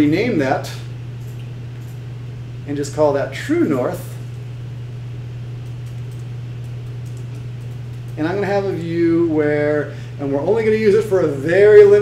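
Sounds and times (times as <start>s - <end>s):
low hum with faint hiss: 0.0s - 12.0s
computer keyboard clicks: 5.6s - 8.2s.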